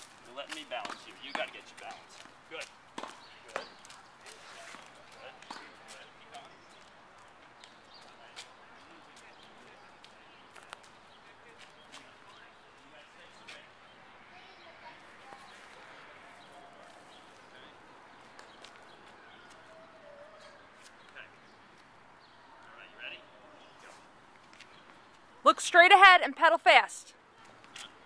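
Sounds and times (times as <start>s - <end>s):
faint distant voices: 0.0s - 25.5s.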